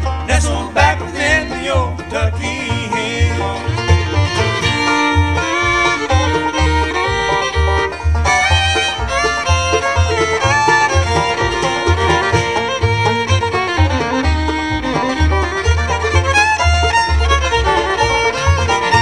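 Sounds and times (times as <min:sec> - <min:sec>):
bluegrass band playing: 0:00.0 - 0:19.0
fiddle lead: 0:00.0 - 0:19.0
upright bass walking: 0:00.0 - 0:19.0.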